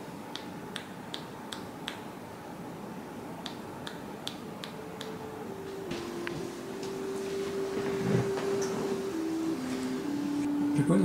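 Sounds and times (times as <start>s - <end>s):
sharp finger clicks at the ear: 0.3s - 2.1s, 3.4s - 5.2s.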